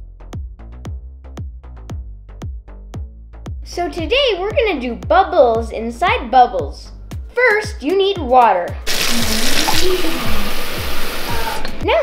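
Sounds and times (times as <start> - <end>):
tap water running into glass: 8.9 - 11.8.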